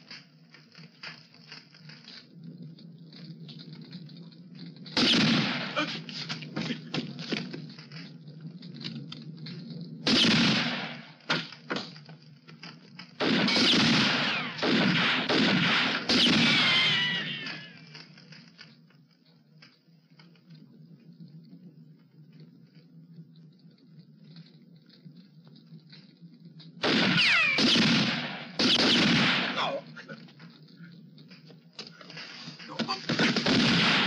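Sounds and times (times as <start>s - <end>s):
gunshots: 5.0s - 7.1s, 10.0s - 11.9s, 13.2s - 17.8s, 26.8s - 30.2s, 32.8s - 34.0s.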